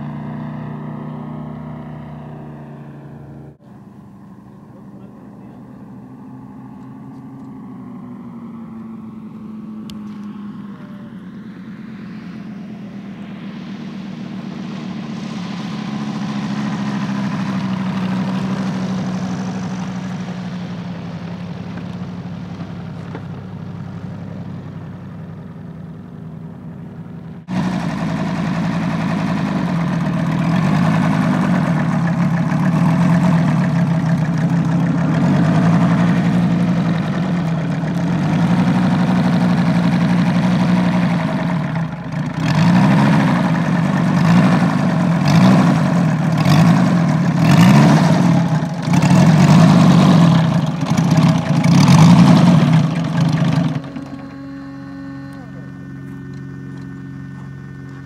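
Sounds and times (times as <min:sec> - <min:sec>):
model aircraft engine running: 0:00.0 - 0:58.0.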